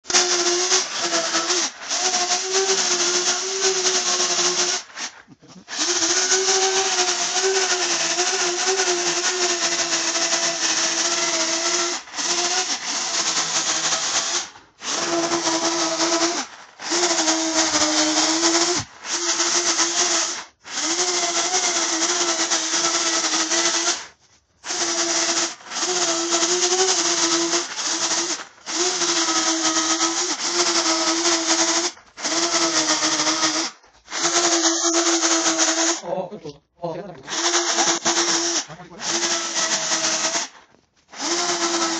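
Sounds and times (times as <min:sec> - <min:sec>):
electric chainsaw cutting wood: 0:00.0 - 0:36.0, 0:37.3 - 0:41.9.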